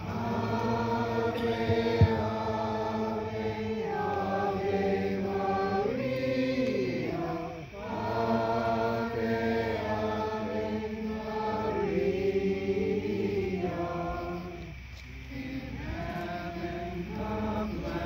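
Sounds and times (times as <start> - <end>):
group singing a slow hymn: 0.0 - 18.0.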